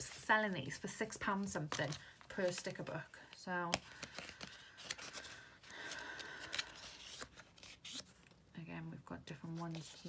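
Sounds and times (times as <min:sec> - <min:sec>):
pages flipping: 0:03.7 - 0:08.4, 0:09.6 - 0:10.0.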